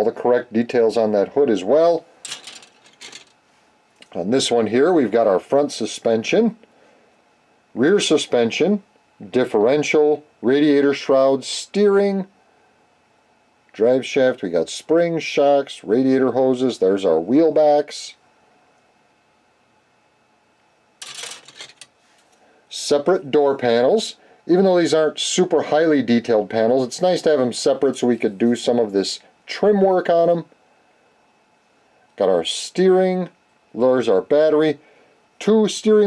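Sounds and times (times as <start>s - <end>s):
plastic parts clattering: 2.2s - 3.4s, 21.0s - 21.9s.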